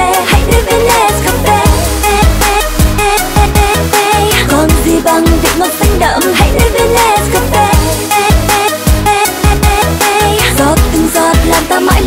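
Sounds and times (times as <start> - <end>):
upbeat pop dance music: 0.0 - 12.0.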